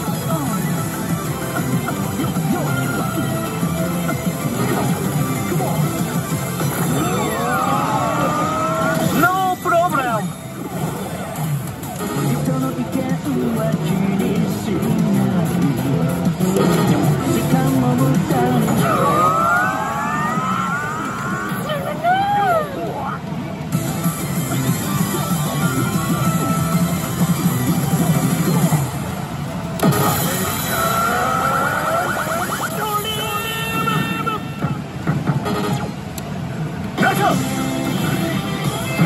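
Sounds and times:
electronic game sounds: 0:00.0 - 0:19.2, 0:23.6 - 0:39.0
slot machine background music: 0:00.0 - 0:19.2, 0:23.6 - 0:33.5, 0:34.8 - 0:39.0.

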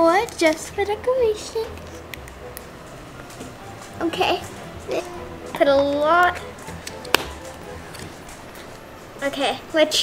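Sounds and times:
plastic lid snapping on: 0:06.8 - 0:07.4.

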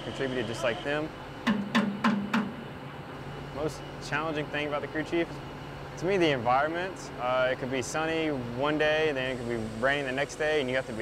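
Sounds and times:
knocks on metal: 0:01.4 - 0:02.6.

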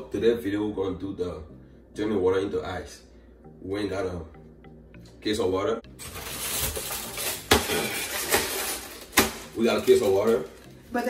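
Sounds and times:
plastic wrap rustling: 0:06.0 - 0:10.7.

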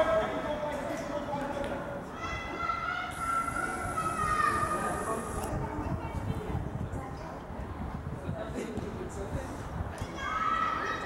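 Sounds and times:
background murmur: 0:00.0 - 0:11.0.

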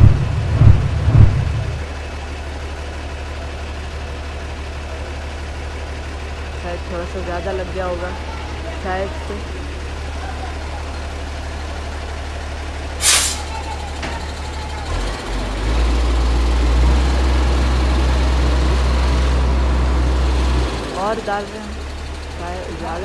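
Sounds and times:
diesel truck engine idling: 0:00.0 - 0:23.0
sharp air hiss: 0:13.0 - 0:13.5.

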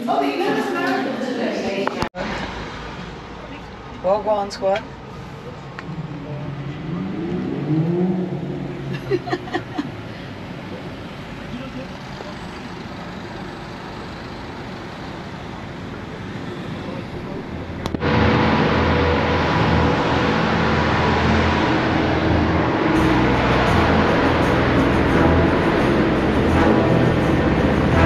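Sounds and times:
road and cabin noise: 0:00.0 - 0:28.0
music with low bass line: 0:18.0 - 0:28.0.

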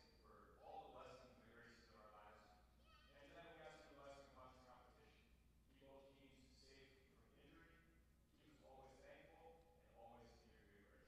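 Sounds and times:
faint man speaking: 0:00.0 - 0:11.0.

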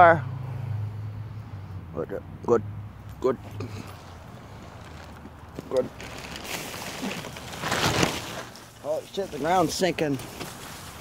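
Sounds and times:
man speaking: 0:08.8 - 0:10.2.

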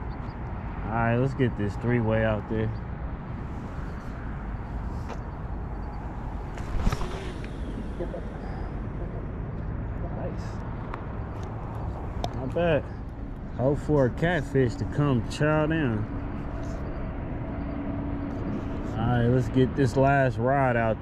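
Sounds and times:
low outdoor rumble: 0:00.0 - 0:21.0.

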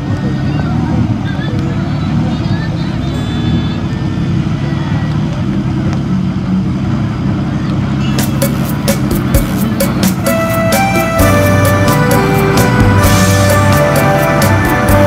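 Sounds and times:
music with steady beat: 0:08.2 - 0:15.0.

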